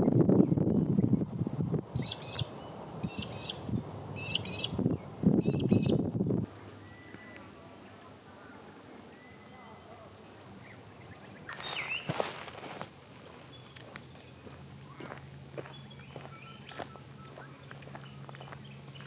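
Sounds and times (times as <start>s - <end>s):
footsteps on grass: 11.5s - 19.0s.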